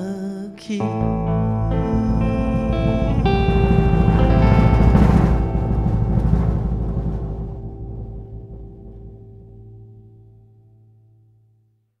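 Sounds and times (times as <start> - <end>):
sustained guitar and bass chord: 0.8 - 11.6
cymbal wash: 0.9 - 10.4.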